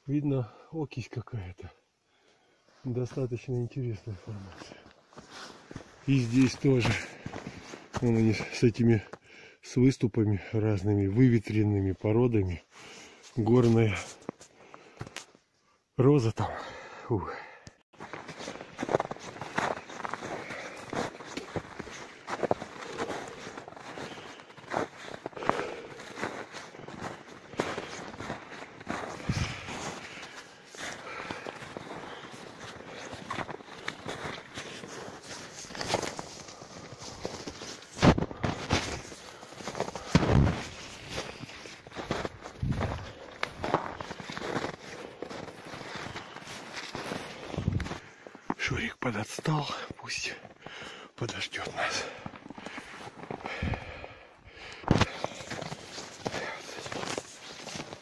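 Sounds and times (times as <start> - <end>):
footsteps on snow and rocks: 3.1 - 9.2, 18.0 - 48.6, 51.6 - 58.0.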